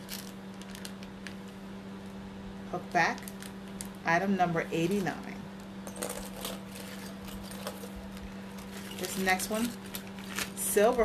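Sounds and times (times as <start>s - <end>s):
steady low hum: 0.0s - 11.0s
earrings clicking and rattling: 5.8s - 10.4s.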